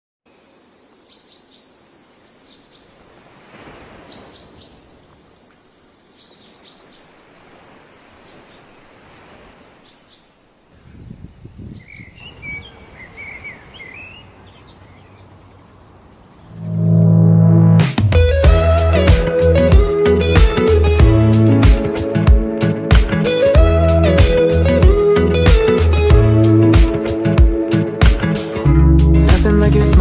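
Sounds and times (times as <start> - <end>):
bird chirping: 0.3 - 3.2, 4.0 - 7.4, 8.2 - 8.9, 9.8 - 16.8.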